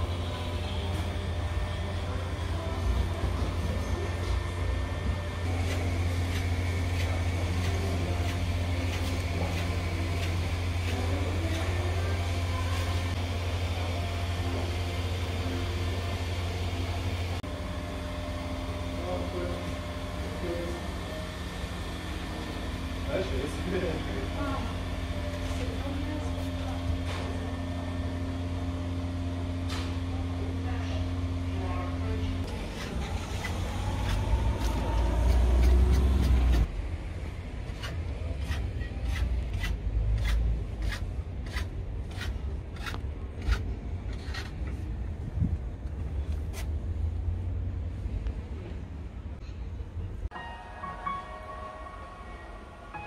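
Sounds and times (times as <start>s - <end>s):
low mechanical hum: 0.0s - 53.0s.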